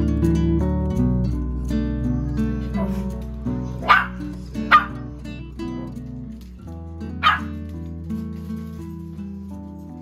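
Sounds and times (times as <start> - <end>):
small dog barking: 3.8 - 5.1, 7.2 - 7.6.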